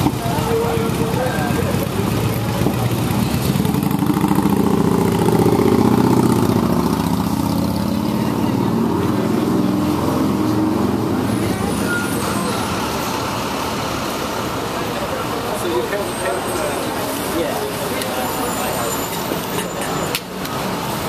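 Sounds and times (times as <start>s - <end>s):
vehicle engine idling: 0.0s - 5.4s.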